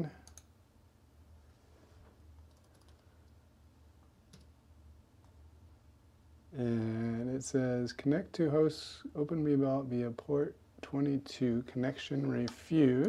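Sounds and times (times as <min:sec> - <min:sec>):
low steady hum: 0:00.0 - 0:13.0
computer mouse clicks: 0:00.2 - 0:00.5, 0:02.4 - 0:03.4.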